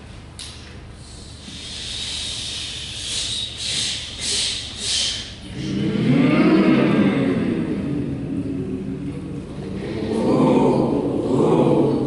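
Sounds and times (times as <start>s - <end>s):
group of voices rumbling: 4.2s - 12.0s.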